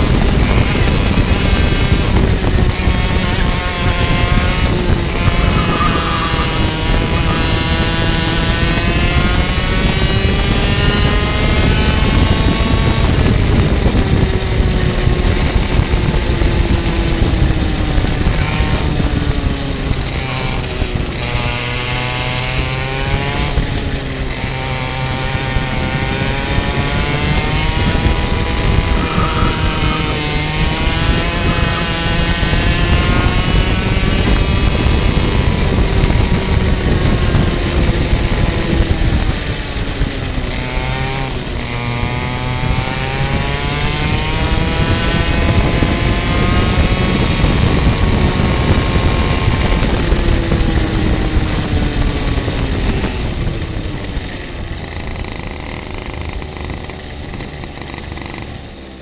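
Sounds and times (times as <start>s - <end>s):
racing kart engine at high revs: 0.0s - 59.0s.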